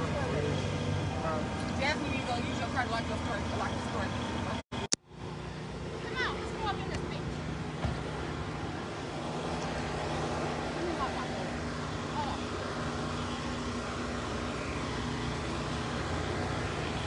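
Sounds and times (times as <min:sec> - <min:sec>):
vehicle engine idling: 0:00.0 - 0:17.0.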